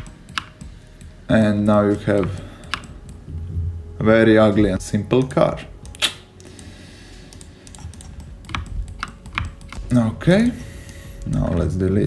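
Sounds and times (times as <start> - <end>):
keyboard and mouse clicks: 0.0 - 3.3, 5.1 - 6.7, 7.3 - 11.7.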